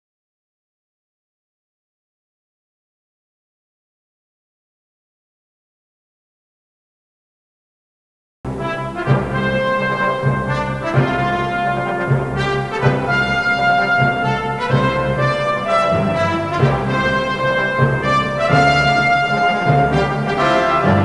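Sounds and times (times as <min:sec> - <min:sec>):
orchestral music led by brass: 0:08.5 - 0:21.0.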